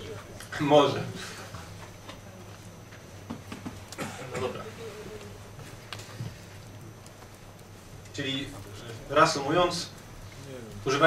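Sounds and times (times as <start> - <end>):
faint voices: 0.0 - 7.2.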